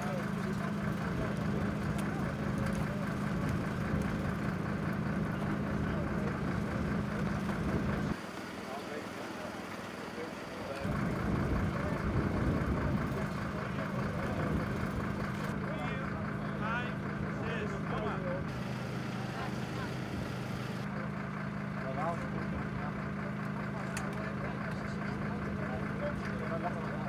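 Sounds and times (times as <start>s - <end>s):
engine running steadily: 0.0s - 27.0s
faint voices: 0.0s - 27.0s.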